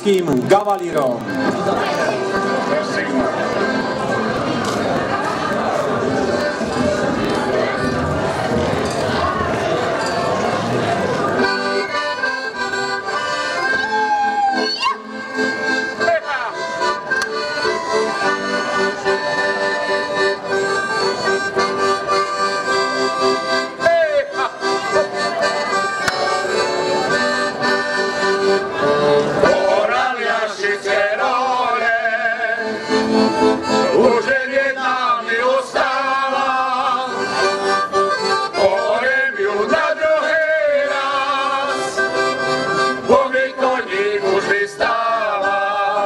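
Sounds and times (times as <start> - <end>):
dense noisy sound: 0.0 - 13.1
accordion folk tune: 0.0 - 46.0.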